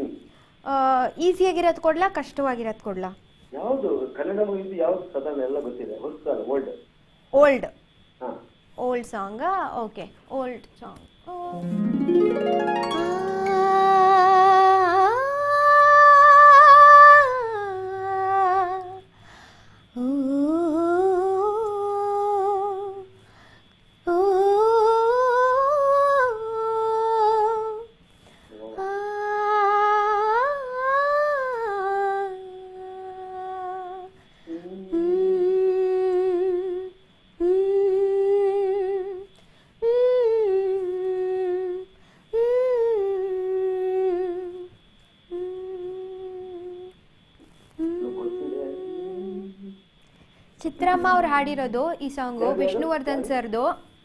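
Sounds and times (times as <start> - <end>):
woman breathing: 0.3 - 0.6, 19.1 - 20.0, 23.2 - 23.8, 39.4 - 39.8, 41.9 - 42.3
woman singing wordless melody: 10.4 - 19.1, 19.8 - 23.2, 24.0 - 28.0, 28.8 - 34.2, 34.9 - 50.0, 50.6 - 54.0.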